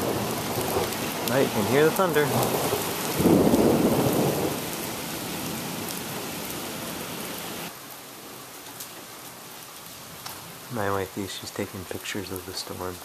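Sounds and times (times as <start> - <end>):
thunder rumbling: 0.0 - 7.7
steady rain: 0.0 - 13.0.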